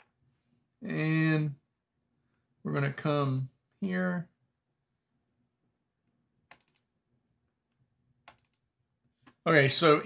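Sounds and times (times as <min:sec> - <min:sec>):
faint computer mouse clicking: 0:06.5 - 0:06.9, 0:08.2 - 0:08.6.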